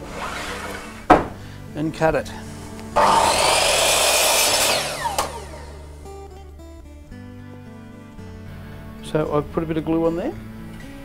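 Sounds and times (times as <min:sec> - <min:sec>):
mitre saw cutting timber: 0:00.0 - 0:01.3, 0:03.0 - 0:06.2
saw motor winding down: 0:03.0 - 0:06.4.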